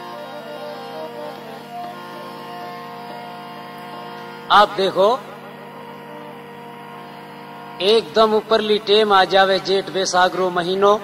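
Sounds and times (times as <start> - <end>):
steady hum of held tones: 0.0 - 11.0
man's voice: 4.5 - 5.4, 7.8 - 11.0.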